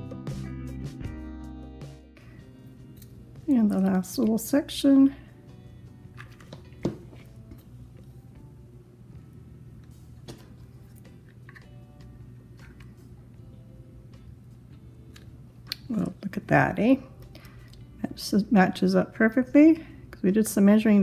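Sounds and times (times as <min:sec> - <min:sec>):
soft background music: 0:00.0 - 0:21.0
low steady hum: 0:02.2 - 0:21.0.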